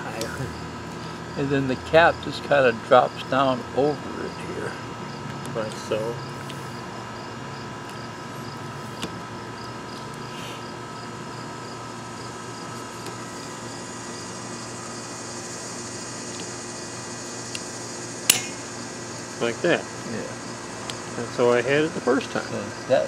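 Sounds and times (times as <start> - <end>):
insects chirping: 0.0 - 23.0
steady outdoor hum: 0.0 - 23.0.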